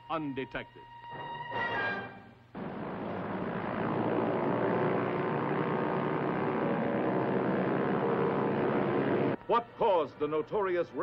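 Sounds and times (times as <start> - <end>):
propeller aircraft engines droning: 2.5 - 11.0.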